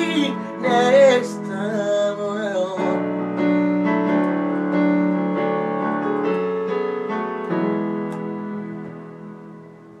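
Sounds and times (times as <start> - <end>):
piano chords on keyboard: 0.0 - 10.0.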